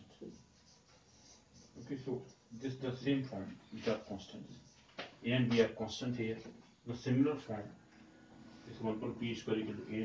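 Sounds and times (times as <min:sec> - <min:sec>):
marker scratching on whiteboard: 0:00.0 - 0:05.7.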